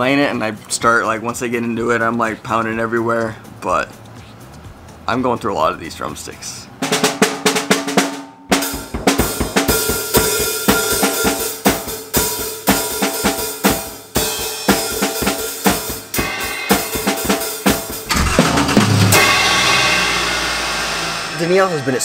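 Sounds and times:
drum kit played hard: 6.8 - 22.0
steady low sound: 18.0 - 21.3.

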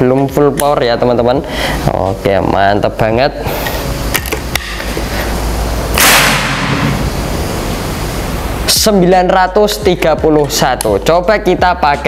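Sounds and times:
air rifle shot: 5.9 - 7.1.

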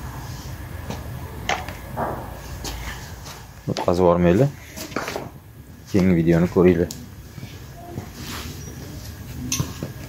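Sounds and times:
steady low rumble: 0.0 - 7.7.

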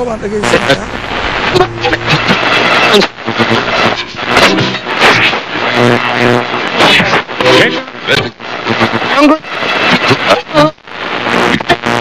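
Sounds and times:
man speaking: 0.0 - 1.1
steady hiss: 0.0 - 12.0.

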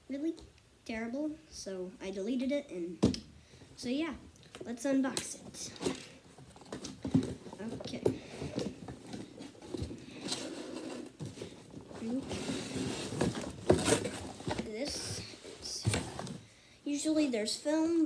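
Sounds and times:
cardboard scraping and rubbing: 6.4 - 16.4.

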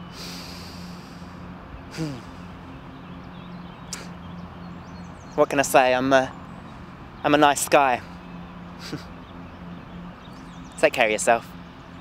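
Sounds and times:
man breathing in through nose: 0.1 - 2.4.

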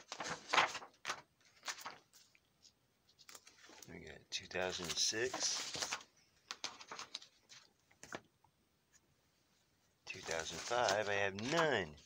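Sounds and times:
plastic sleeve pages clicking and rustling: 0.0 - 2.4, 3.1 - 3.9, 4.7 - 8.2, 10.1 - 12.0.

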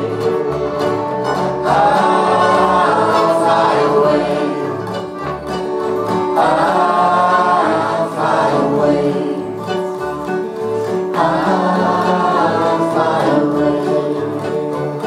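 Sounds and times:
voices singing in harmony: 0.0 - 10.0, 10.7 - 15.0
mandolin: 0.0 - 15.0
strummed acoustic guitars: 0.0 - 15.0.

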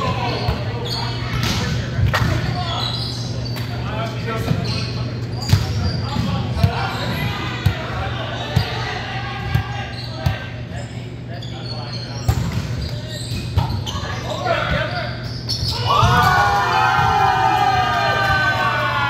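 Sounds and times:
players' voices: 0.0 - 19.0.

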